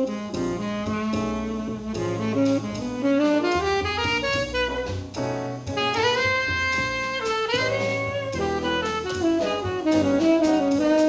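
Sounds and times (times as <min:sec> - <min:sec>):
drum kit: 0:00.0 - 0:11.0
piano: 0:00.0 - 0:11.0
tenor saxophone melody: 0:00.0 - 0:11.0
upright bass: 0:00.0 - 0:11.0.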